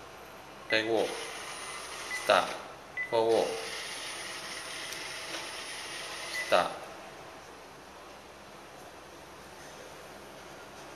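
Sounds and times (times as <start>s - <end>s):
robot vacuum motors whirring: 3.6s - 6.4s.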